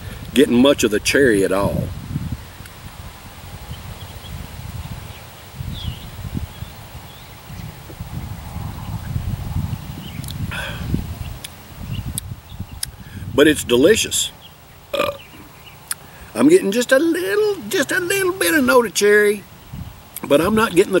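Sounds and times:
wind buffeting microphone: 0:00.0 - 0:14.4, 0:19.6 - 0:21.0
faint chirp: 0:14.3 - 0:16.2.

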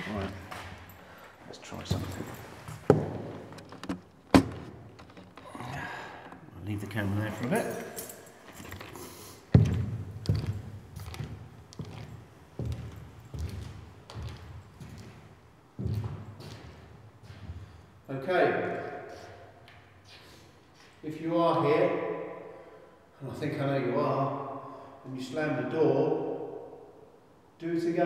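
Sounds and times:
footsteps on hard floor: 0:01.8 - 0:05.5, 0:08.5 - 0:17.7.

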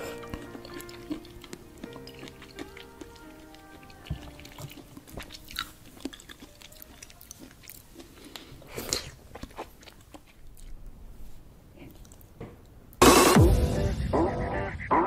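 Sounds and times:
background music with held tones: 0:00.0 - 0:08.4, 0:13.0 - 0:15.0
wet crunching of greens: 0:00.0 - 0:12.8.

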